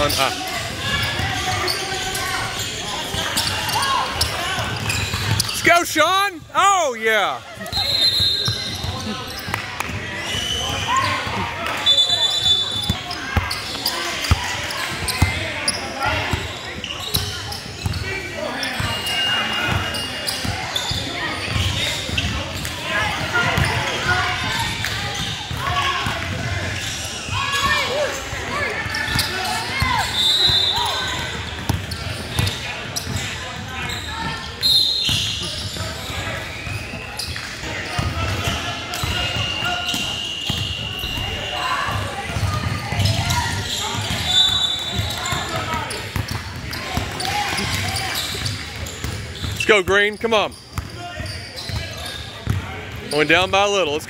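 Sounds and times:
shoe squeaks: 0.0s - 5.7s, 7.7s - 9.6s, 10.2s - 22.7s, 28.5s - 37.4s, 39.0s - 53.3s
chatter of people: 0.0s - 54.0s.

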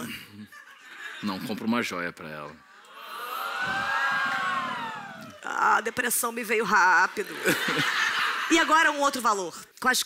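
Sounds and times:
audience saying aww: 2.9s - 5.5s.

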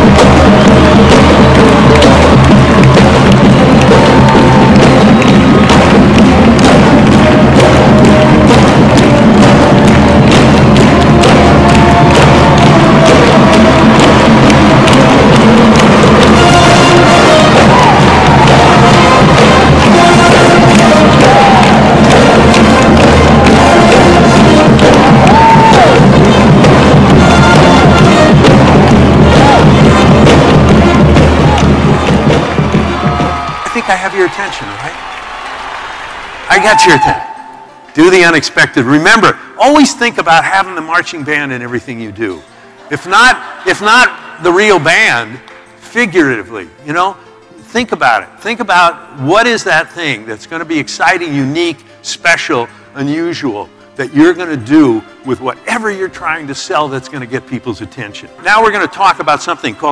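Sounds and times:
pounding drum beat: 0.0s - 37.4s
marching band playing: 0.0s - 38.4s
crowd cheering and clapping: 0.0s - 40.7s, 42.2s - 45.8s
trumpet: 0.0s - 41.0s.

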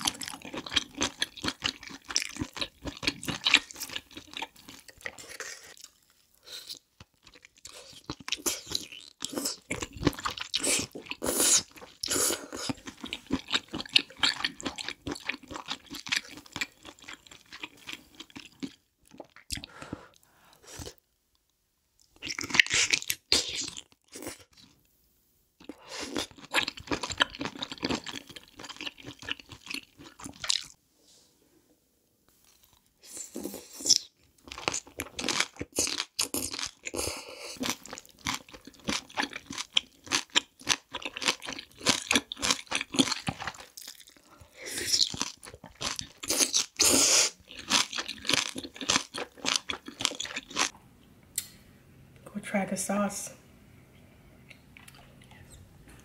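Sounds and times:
wet chewing and crunching: 0.0s - 19.8s, 22.0s - 24.8s, 25.6s - 30.8s, 32.4s - 50.8s, 54.4s - 56.0s.

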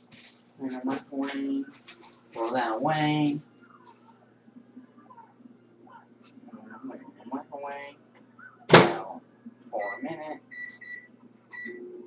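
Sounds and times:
microwave running hum: 0.0s - 12.0s
microwave keypad beeps: 9.8s - 12.0s.

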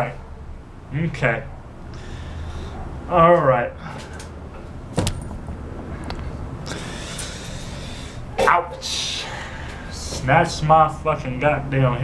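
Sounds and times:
low steady rumble: 4.4s - 8.4s.

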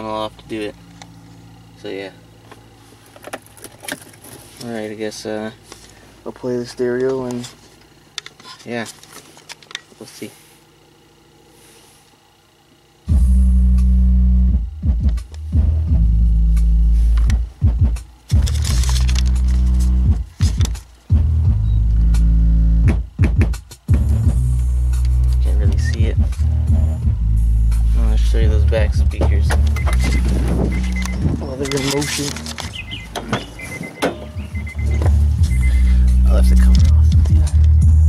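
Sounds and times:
bass-heavy music from car stereo: 13.0s - 38.0s.

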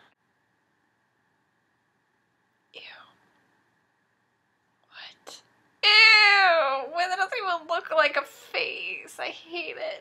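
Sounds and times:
woman's wordless cry: 5.8s - 6.8s.

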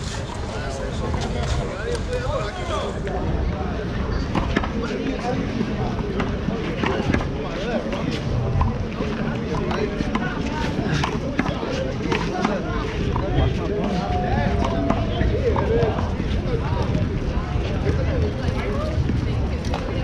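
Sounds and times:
distant people talking: 0.0s - 20.0s.

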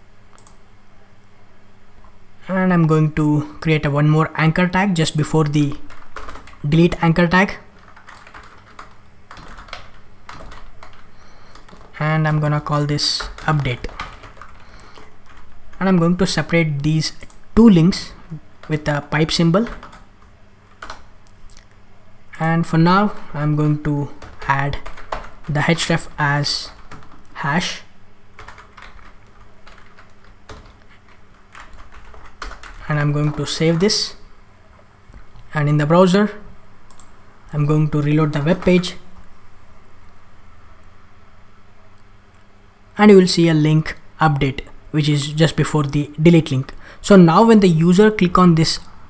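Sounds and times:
computer keyboard typing: 0.3s - 0.6s, 4.6s - 21.7s, 22.5s - 34.3s, 36.9s - 39.3s.

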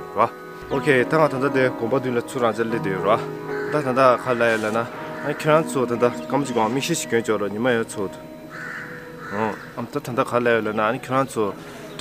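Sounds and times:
man talking: 0.0s - 8.2s, 9.4s - 11.6s
crow cawing: 3.4s - 6.8s, 8.5s - 10.2s.

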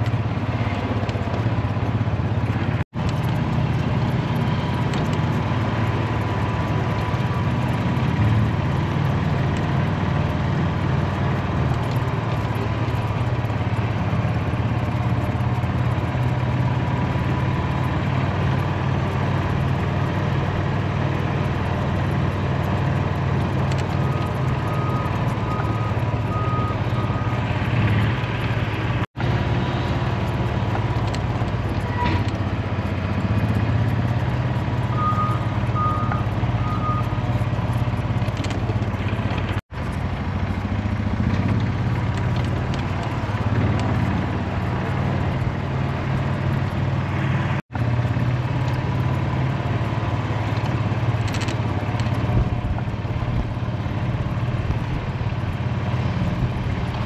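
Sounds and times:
vehicle engine running: 0.0s - 57.0s.

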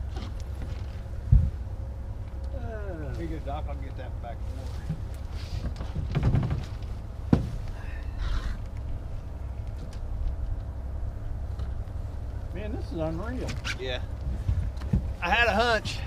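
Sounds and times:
low wind rumble: 0.0s - 16.0s
man's voice: 15.2s - 16.0s.

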